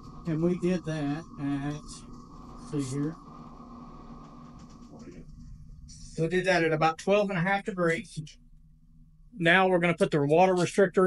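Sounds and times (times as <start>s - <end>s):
water pump humming with whine: 0.0s - 10.9s.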